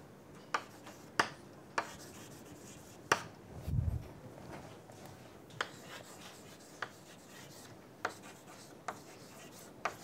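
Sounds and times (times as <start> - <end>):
chalk tapping on chalkboard: 0.5 - 3.3, 5.5 - 10.0
chalk scratching: 0.6 - 1.2, 1.8 - 3.2, 5.6 - 10.0.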